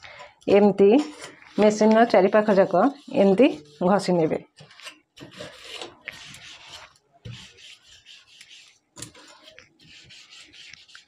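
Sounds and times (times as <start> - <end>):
sponge scrubbing enamelled metal: 1.1 - 4.3, 5.2 - 11.0.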